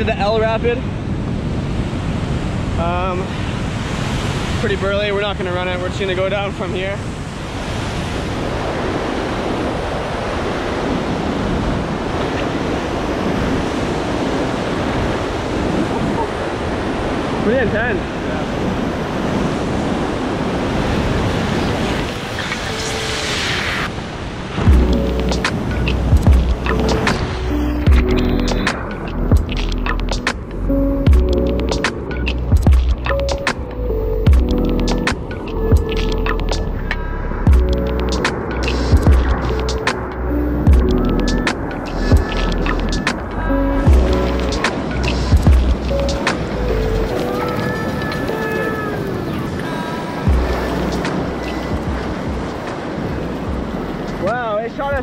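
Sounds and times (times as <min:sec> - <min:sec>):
rushing whitewater: 0:01.9 - 0:29.2, 0:38.1 - 0:55.0
music with heavy bass beat: 0:24.7 - 0:47.3, 0:50.3 - 0:52.6.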